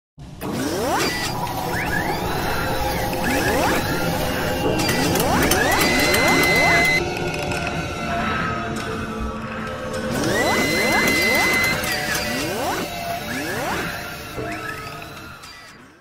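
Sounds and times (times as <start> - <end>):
robotic servo whines: 0.4 - 7.0, 10.0 - 16.0
mechanical clicks and ratcheting: 4.6 - 7.7.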